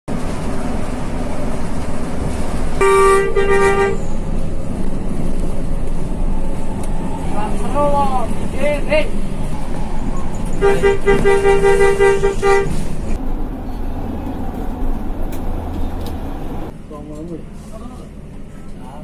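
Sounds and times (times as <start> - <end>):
bus engine running: 0.1 - 19.0
road noise: 0.1 - 19.0
bus horn blast: 2.8 - 4.1, 10.6 - 12.9.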